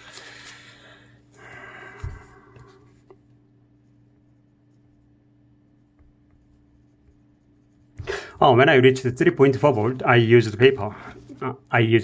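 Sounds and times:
marker pen scratching on paper: 0:05.8 - 0:08.5.

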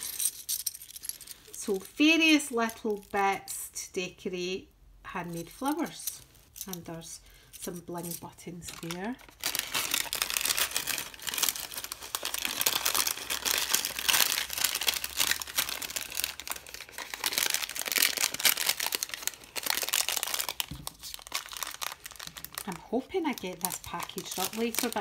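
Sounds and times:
cellophane packaging crinkling: 0:00.0 - 0:01.6, 0:07.9 - 0:25.0.

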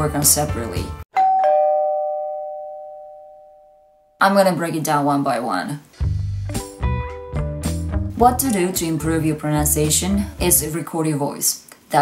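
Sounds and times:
two-note doorbell chime: 0:01.1 - 0:04.2.

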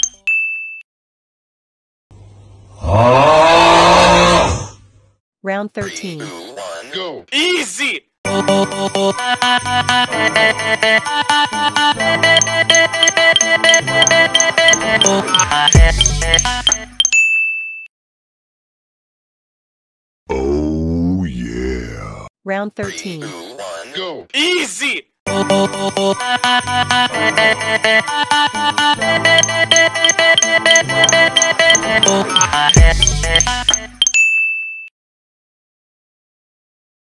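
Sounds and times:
electronic music with chimes: 0:00.0 - 0:00.2, 0:12.2 - 0:17.1, 0:29.2 - 0:34.2.

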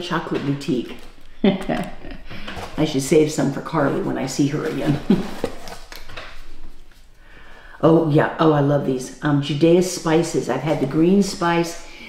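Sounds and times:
person laughing: 0:01.3 - 0:02.6, 0:04.9 - 0:05.6
rummaging in cardboard box: 0:03.6 - 0:06.9
packaging rustling and knocking: 0:04.6 - 0:07.0.

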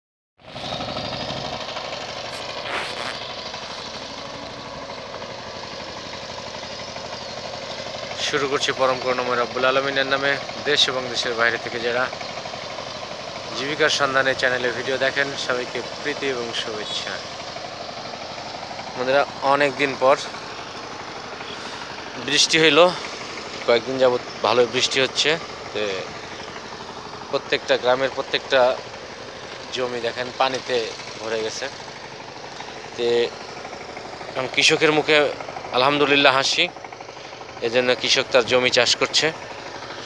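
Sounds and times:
power tiller engine running: 0:00.4 - 0:40.0
short loud noise: 0:02.3 - 0:03.4.

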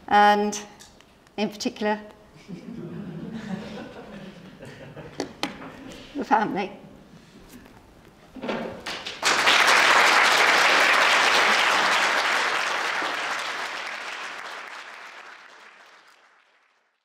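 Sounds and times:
audience applauding: 0:08.8 - 0:17.0.

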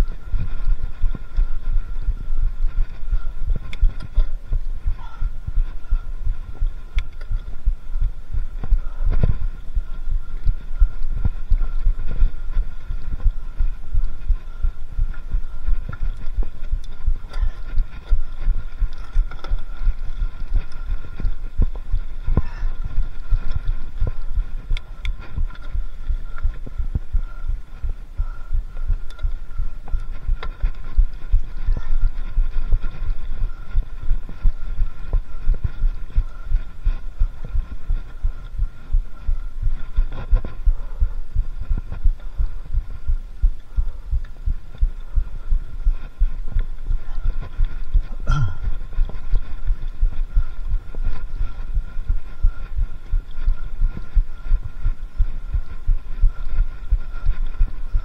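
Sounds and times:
bike rattling over bumpy trail: 0:00.0 - 0:45.0.

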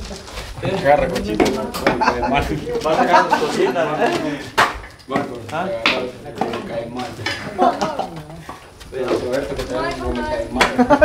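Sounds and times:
men talking: 0:00.6 - 0:11.0.

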